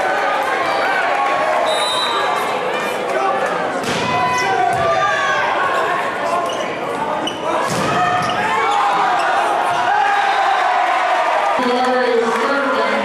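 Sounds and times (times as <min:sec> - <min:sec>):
players and spectators shouting: 0:00.0 - 0:13.0
volleyball struck with thuds: 0:03.8 - 0:05.0, 0:07.6 - 0:08.2.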